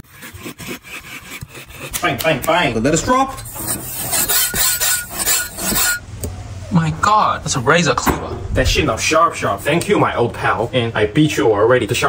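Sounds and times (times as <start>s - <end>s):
blade scraping on sharpening block: 3.4s - 6.0s.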